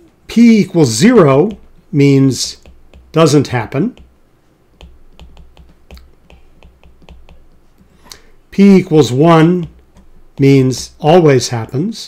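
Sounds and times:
stylus tapping on glass screen: 1.4s - 1.8s, 2.5s - 3.2s, 3.8s - 8.3s, 8.9s - 11.8s.

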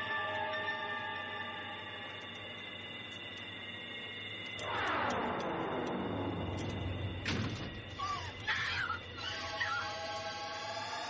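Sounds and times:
suspenseful held tones underscore: 0.0s - 11.0s.

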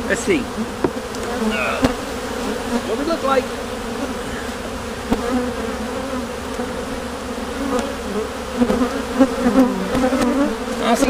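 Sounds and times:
honeybees buzzing: 0.0s - 11.0s.

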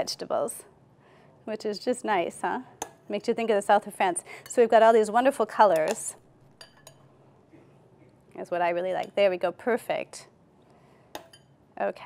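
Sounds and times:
metal spoon clinking on dishware: 5.7s - 7.1s, 11.2s - 11.6s.

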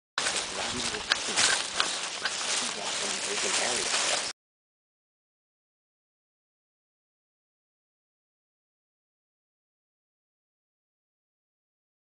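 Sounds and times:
faint voices: 0.2s - 4.3s.

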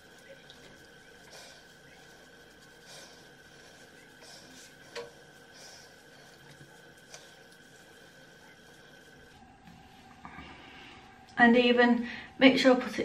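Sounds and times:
cotton pad wiping skin: 0.0s - 10.2s
faint high whine: 0.0s - 13.0s.

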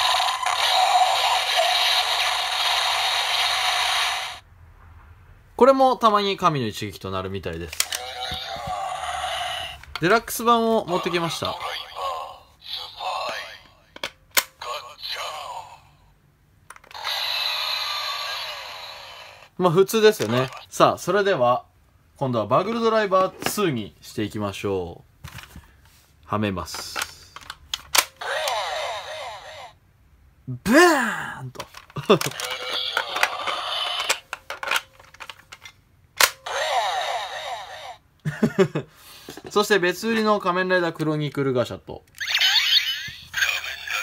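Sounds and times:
recorded voice from toy speaker: 0.0s - 4.4s, 7.5s - 13.9s, 14.5s - 16.0s, 16.9s - 21.6s, 28.2s - 29.8s, 30.7s - 34.2s, 36.4s - 38.0s, 42.2s - 44.0s
sharp plastic click: 36.2s - 36.4s.

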